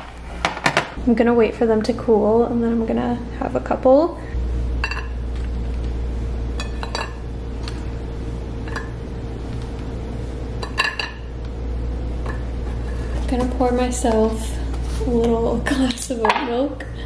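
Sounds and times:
low hum: 0:00.0 - 0:16.2.

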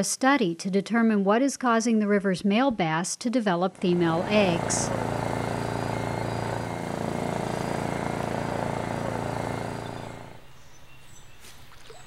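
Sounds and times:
boat engine droning hum: 0:03.8 - 0:10.7.

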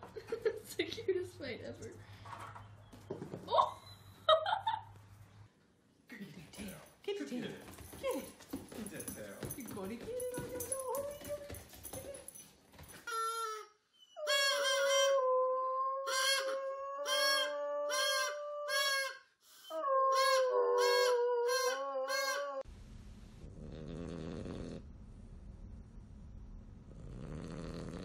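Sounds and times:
toy harmonica notes: 0:13.1 - 0:15.2, 0:16.1 - 0:19.3
dog snoring: 0:23.4 - 0:24.9, 0:26.8 - 0:28.0.

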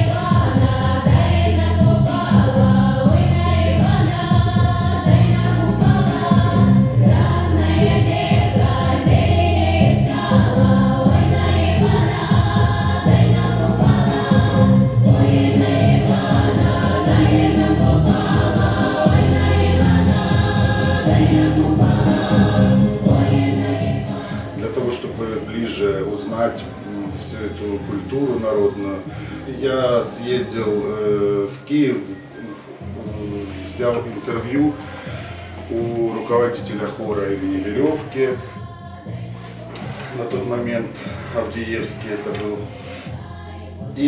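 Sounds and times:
instrumental music with heavy bass: 0:00.0 - 0:24.6
choir singing: 0:00.0 - 0:44.0.

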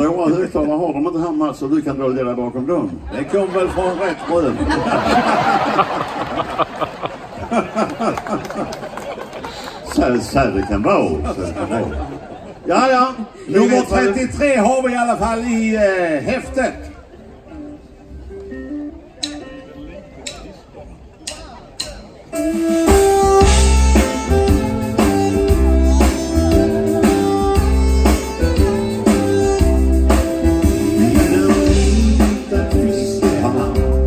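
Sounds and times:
live band playing: 0:03.8 - 0:07.6, 0:13.2 - 0:34.0.

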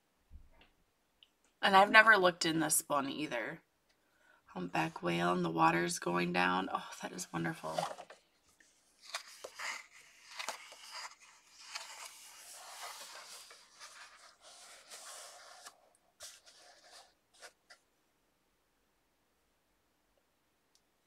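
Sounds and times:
paper pages rustling: 0:07.6 - 0:17.8.

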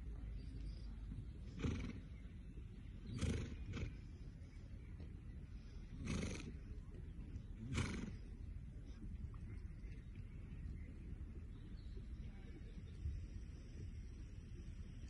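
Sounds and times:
low background rumble: 0:00.0 - 0:15.0
horse snorting: 0:01.4 - 0:02.2, 0:03.1 - 0:04.2, 0:05.9 - 0:06.7, 0:07.6 - 0:08.5.

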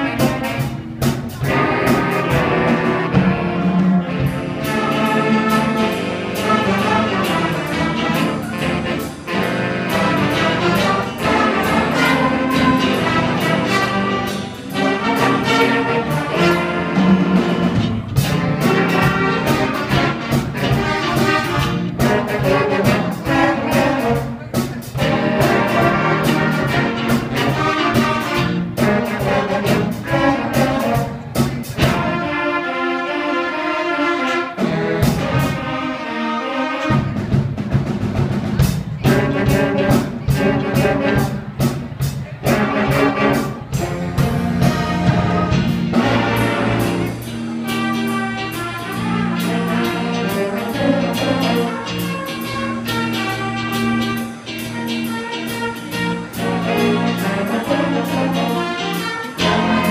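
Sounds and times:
jazz band playing: 0:00.0 - 0:59.9
saxophones and horns: 0:00.0 - 0:59.9.

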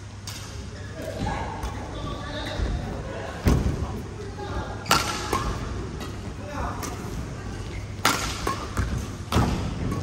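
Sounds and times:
racket hitting shuttlecock: 0:08.0 - 0:10.0.

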